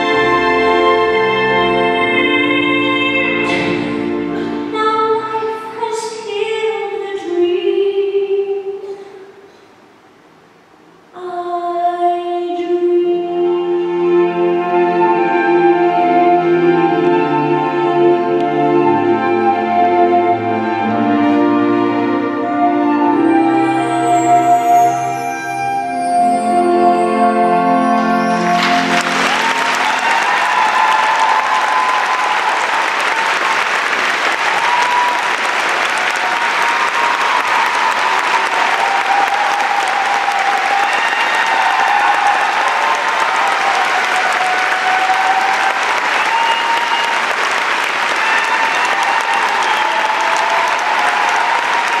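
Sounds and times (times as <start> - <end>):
orchestra sustained chord: 0.0 - 4.7, 13.5 - 31.8
audience applauding: 27.9 - 52.0
people cheering and whooping: 27.9 - 52.0.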